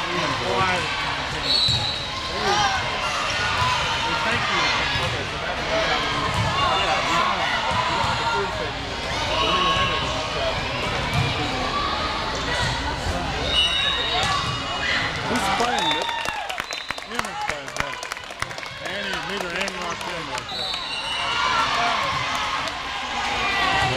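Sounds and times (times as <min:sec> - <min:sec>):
overlapping voices of spectators: 0:15.1 - 0:23.9
sharp claps: 0:15.7 - 0:20.5.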